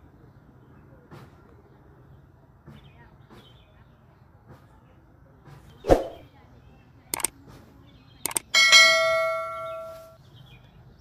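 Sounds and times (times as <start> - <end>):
mouse clicks: 8.3 - 8.5
bell ding: 8.6 - 10.2.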